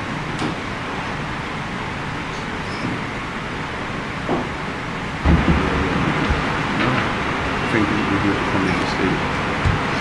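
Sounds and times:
room tone hiss: 0:00.0 - 0:10.0
low rumble: 0:05.2 - 0:07.8.

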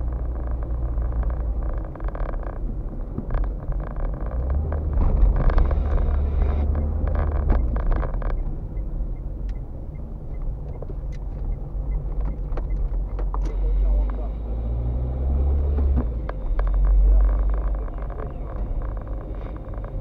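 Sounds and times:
car engine and road drone: 0:00.0 - 0:20.0.

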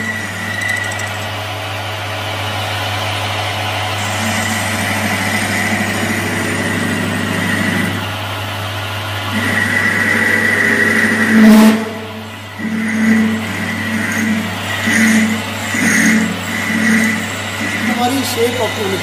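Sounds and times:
tool cutting metal: 0:00.0 - 0:01.4, 0:09.4 - 0:19.0
lathe humming: 0:00.0 - 0:19.0.

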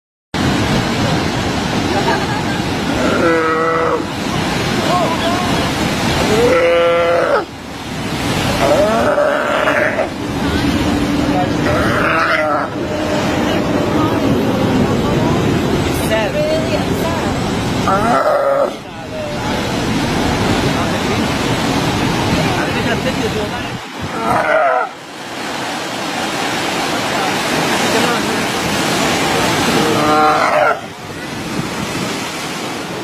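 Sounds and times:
sea lion bleating cries: 0:02.9 - 0:04.1, 0:06.2 - 0:07.5, 0:08.6 - 0:10.2, 0:11.6 - 0:14.2, 0:17.8 - 0:18.8, 0:24.1 - 0:25.0, 0:29.7 - 0:30.9.

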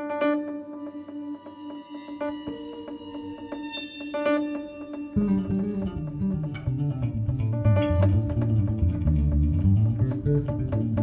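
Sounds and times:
plucked bass: 0:05.2 - 0:11.0.

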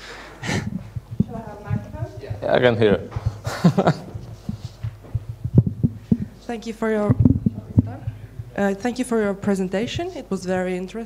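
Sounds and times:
electrical hum: 0:00.0 - 0:11.0
microphone handling thumps: 0:00.4 - 0:10.7.

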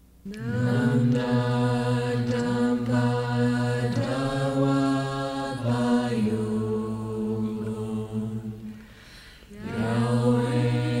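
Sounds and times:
low voices chanting: 0:00.3 - 0:11.0.

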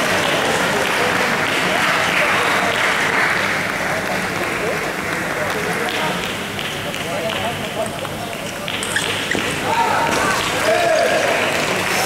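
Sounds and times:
chatter in sports hall: 0:00.0 - 0:12.0
table tennis ball clicking: 0:06.2 - 0:09.6.

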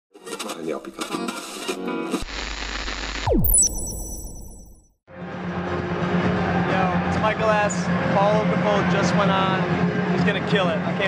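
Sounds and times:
static-like noise: 0:02.1 - 0:03.3.

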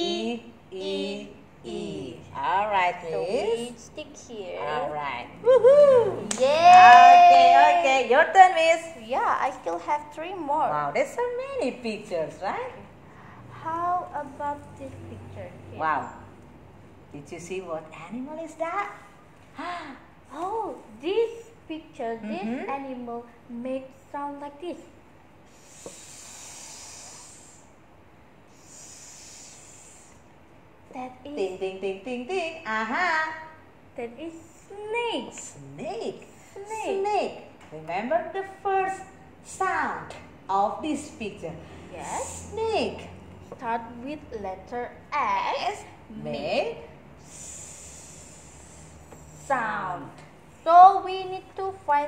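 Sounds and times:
person hissing like a snake: 0:25.5 - 0:27.7, 0:28.5 - 0:30.2, 0:47.2 - 0:49.5.

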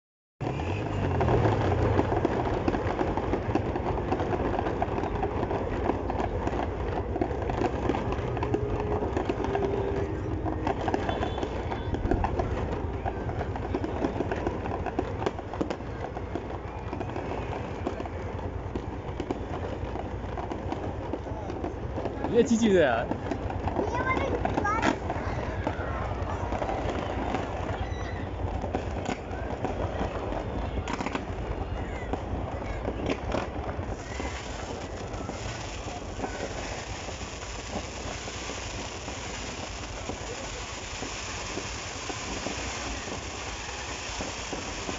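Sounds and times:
fireworks crackling: 0:00.4 - 0:44.9.

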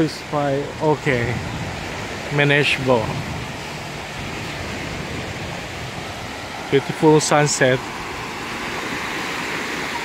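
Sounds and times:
waves washing up a beach: 0:00.0 - 0:10.0
wind on microphone: 0:00.0 - 0:10.0.

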